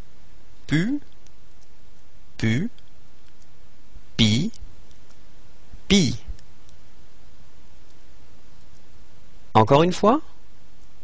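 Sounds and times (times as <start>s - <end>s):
low background noise: 0.0s - 11.0s
person speaking: 0.7s - 1.2s, 2.4s - 2.9s, 4.2s - 4.7s, 5.8s - 6.4s
faint clicks: 2.7s - 3.6s.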